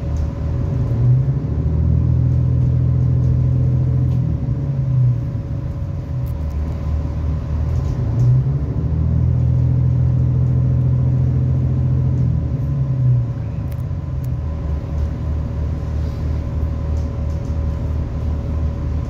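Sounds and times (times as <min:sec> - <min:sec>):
train diesel engine drone: 0:00.0 - 0:19.0.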